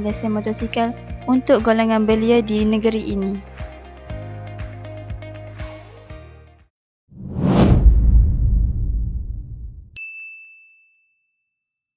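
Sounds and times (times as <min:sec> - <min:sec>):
deep rumble: 0:07.2 - 0:10.0
loud whoosh: 0:07.2 - 0:10.0
bright ding: 0:10.0 - 0:11.5.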